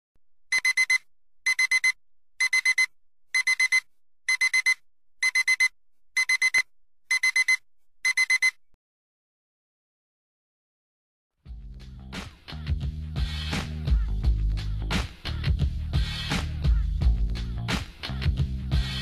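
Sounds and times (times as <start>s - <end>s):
electronic alarm beeping: 0.5s - 8.6s.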